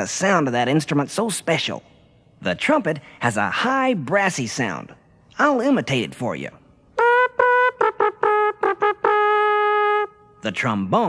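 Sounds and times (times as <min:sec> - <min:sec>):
man imitating trumpet with mouth: 0:07.0 - 0:10.2.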